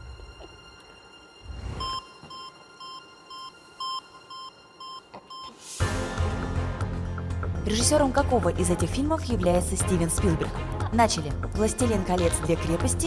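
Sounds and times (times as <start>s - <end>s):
short electronic beeps: 1.8s - 5.5s.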